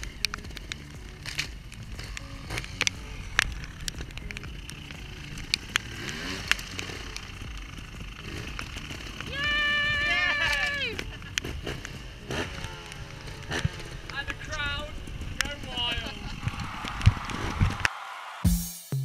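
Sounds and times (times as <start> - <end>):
motorcycle engine blips: 0.0 - 17.9
person yelling: 9.2 - 11.1.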